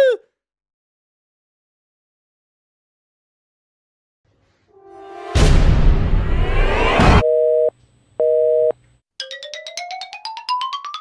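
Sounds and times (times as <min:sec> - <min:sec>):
loud whoosh: 0:04.9 - 0:07.2
telephone busy signal beeps: 0:07.2 - 0:08.7.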